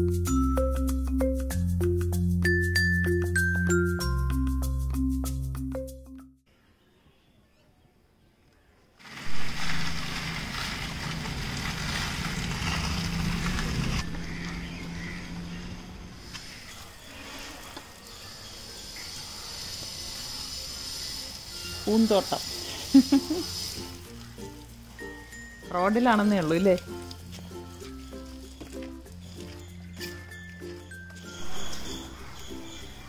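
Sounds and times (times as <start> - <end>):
street ambience: 6.4 - 33.0
vehicle engine running: 9.1 - 16.7.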